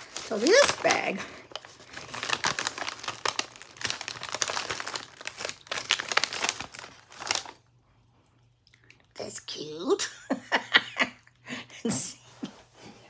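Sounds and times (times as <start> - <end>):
bag crinkling: 0.0 - 7.7.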